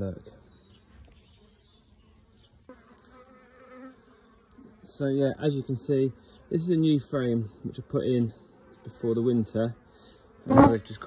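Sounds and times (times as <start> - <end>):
honeybees buzzing: 0.2 - 11.0
wavering buzz: 10.4 - 11.0.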